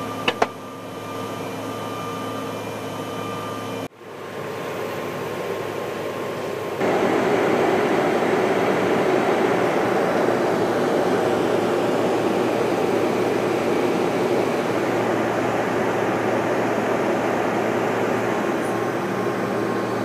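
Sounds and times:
jet engine cabin roar: 0.0 - 20.0.

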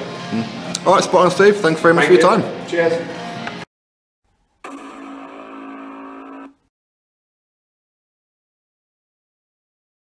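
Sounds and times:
buzzy pitched tone: 4.6 - 6.7.

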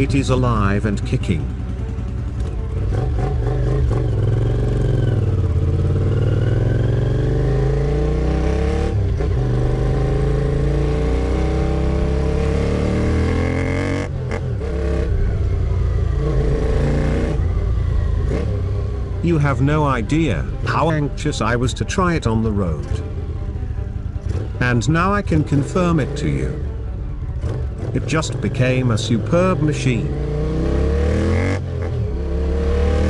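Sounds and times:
motorcycle engine accelerating: 0.0 - 33.0.

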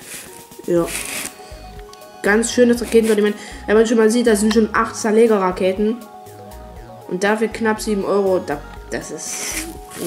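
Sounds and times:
paper rustling: 0.0 - 1.4.

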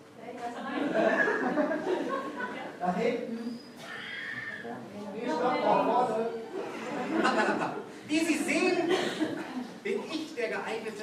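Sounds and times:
high drawn-out cry: 3.8 - 4.7.

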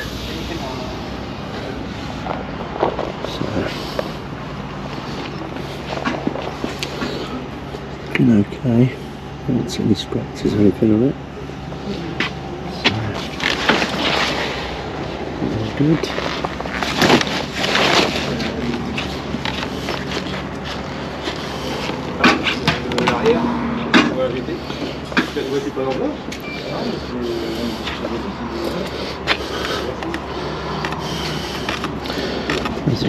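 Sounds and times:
faint talking: 11.8 - 13.4, 21.6 - 33.0.

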